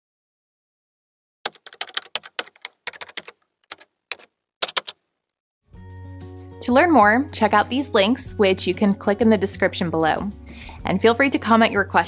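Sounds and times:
keystroke clicks: 1.5 - 5.0.

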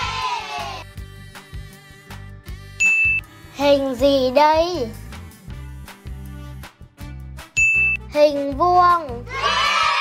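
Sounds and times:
soft background music: 0.0 - 10.0
bright ding chime: 7.6 - 8.0.

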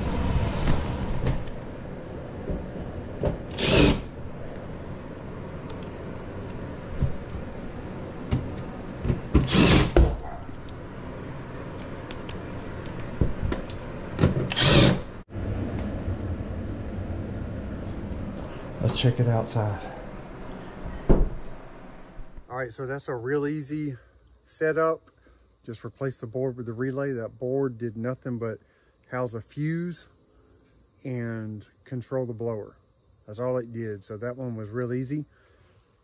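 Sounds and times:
impact driver driving screws: 3.5 - 4.1, 9.3 - 10.2, 14.3 - 15.1.

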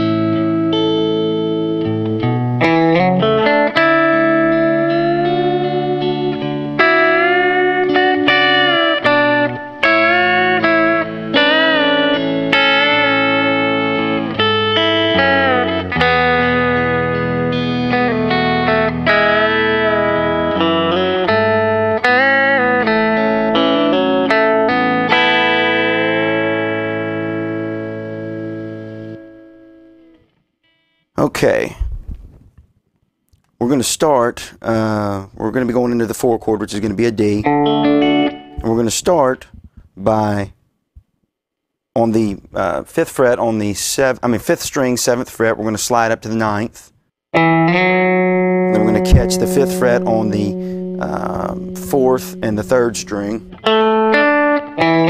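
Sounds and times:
looped guitar backing chords: 0.0 - 30.4, 36.6 - 40.3, 47.4 - 55.0
electric guitar country riff: 0.0 - 31.7, 34.7 - 40.4, 47.4 - 55.0.

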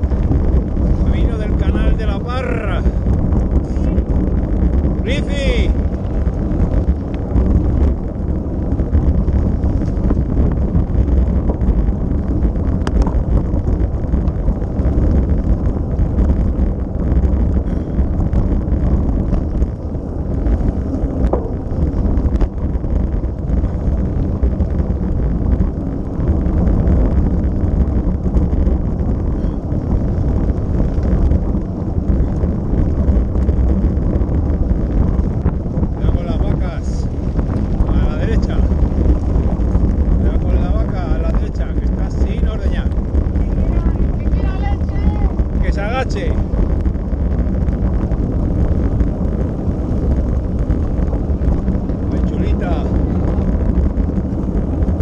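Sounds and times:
bike tyres rolling over gravel: 0.0 - 55.0
wind buffeting microphone: 0.0 - 55.0.

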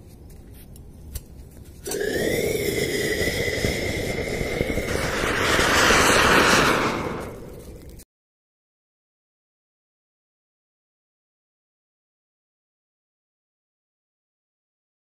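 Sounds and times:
firework hissing and whistling: 1.9 - 8.0.

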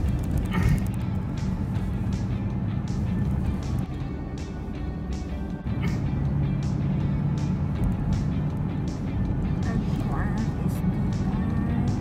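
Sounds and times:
car driving hum: 0.0 - 12.0
music with heavy bass: 0.0 - 12.0.

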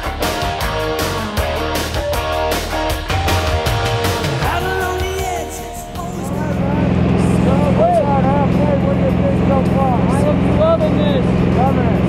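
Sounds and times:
man talking loudly: 4.5 - 12.0
light aircraft engine and propeller: 6.5 - 12.0.

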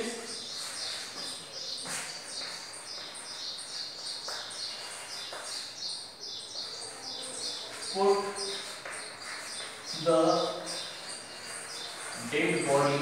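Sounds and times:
chalk strokes on blackboard: 0.0 - 5.8, 6.6 - 13.0
small bird chirping: 0.0 - 13.0.

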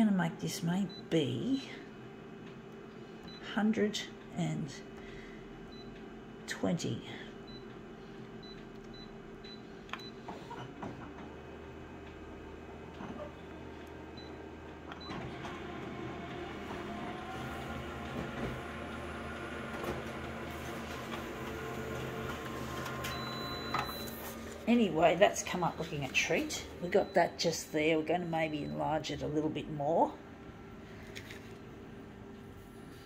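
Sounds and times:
copier mechanism whirring: 7.6 - 28.7
copier key beeps: 8.4 - 10.2, 21.0 - 28.9.

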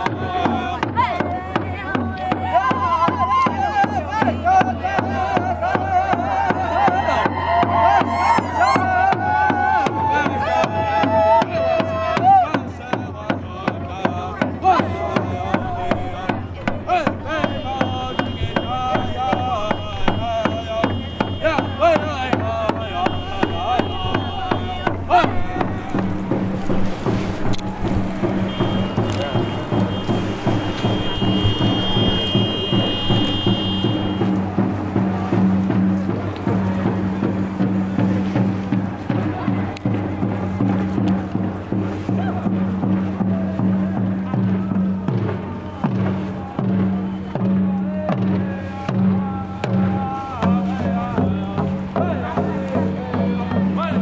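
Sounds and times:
crowd voices: 0.0 - 54.0
steady rhythmic beat: 0.0 - 54.0.

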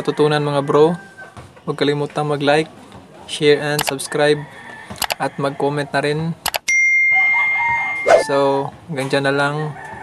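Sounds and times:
bell ding: 6.7 - 8.3.

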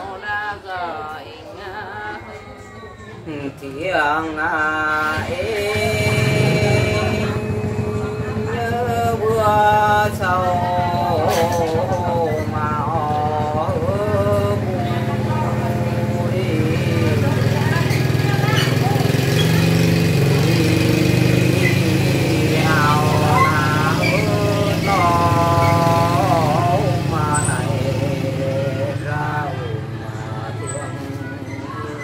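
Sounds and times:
person singing unaccompanied: 0.0 - 32.0.

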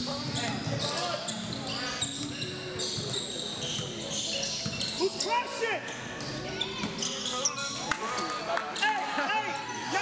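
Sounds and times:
sneakers squeaking on court: 0.0 - 8.9.

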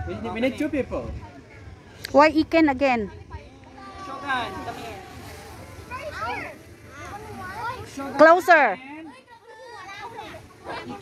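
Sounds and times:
children's voices: 1.3 - 8.4, 9.0 - 11.0.

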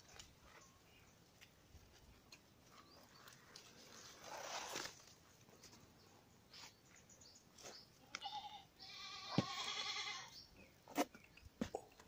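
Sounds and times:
goat bleating: 8.1 - 10.3.

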